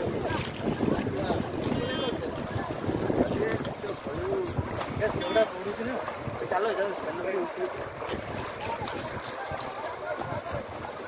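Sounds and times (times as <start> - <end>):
floodwater rushing: 0.0 - 11.0
wind buffeting microphone: 0.0 - 11.0.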